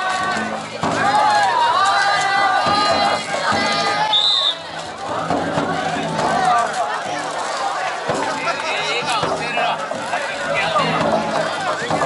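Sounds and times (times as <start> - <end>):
crowd shouting and calling: 0.0 - 12.0
festival music: 0.0 - 12.0.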